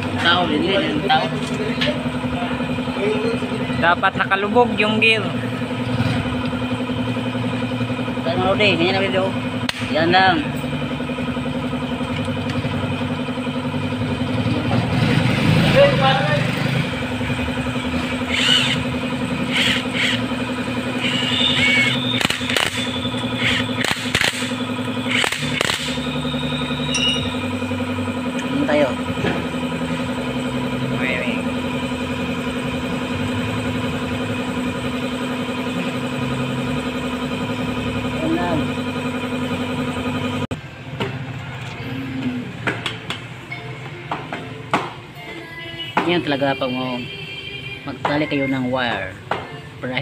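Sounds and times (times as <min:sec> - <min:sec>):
steady machine hum: 0:00.0 - 0:50.0.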